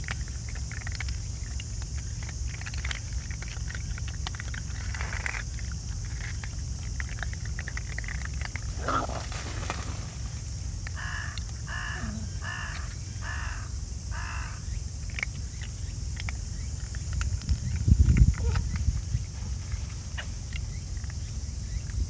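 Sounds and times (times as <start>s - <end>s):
animals crunching dry food: 0.0s - 22.0s
crow cawing: 10.8s - 14.6s.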